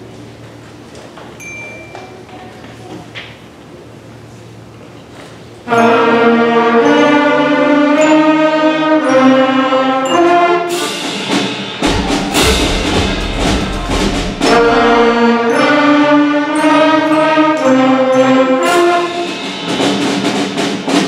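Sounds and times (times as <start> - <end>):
concert band playing: 10.7 - 17.0
sharp percussion hits: 10.7 - 17.0
deep low rumble: 11.8 - 15.2.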